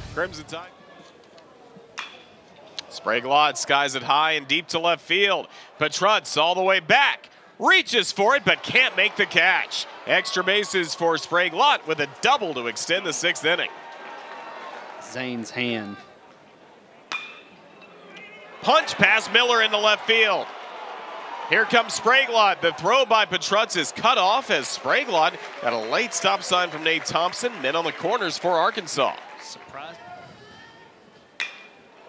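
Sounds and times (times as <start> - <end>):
low background noise: 0.0 - 32.0
metal bat hitting ball: 2.0 - 2.3, 17.1 - 17.5, 31.4 - 31.8.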